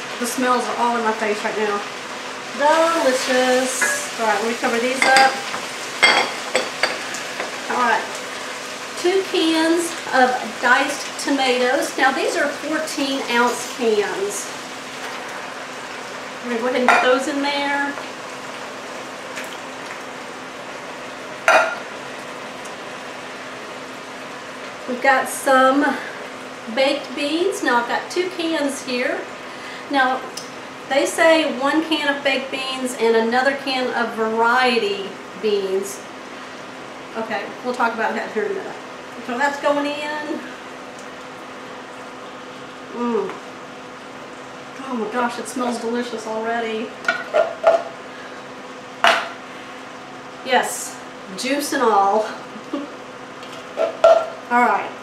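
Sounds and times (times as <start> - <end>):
food sizzling in a pot: 0.0 - 55.0
induction burner humming: 0.0 - 55.0.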